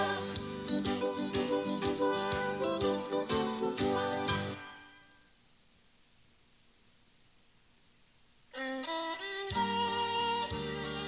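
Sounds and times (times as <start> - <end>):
music from cassette: 0.0 - 5.2, 8.5 - 11.0
faint tape hiss: 0.0 - 11.0
fiddle playing: 8.5 - 11.0.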